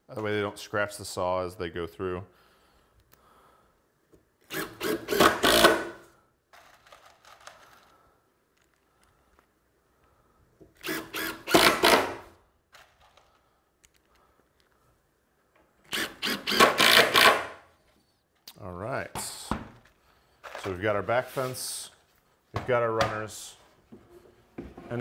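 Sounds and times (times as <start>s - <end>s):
impact driver driving screws: 4.4s - 6.0s, 10.8s - 12.9s, 15.8s - 17.6s.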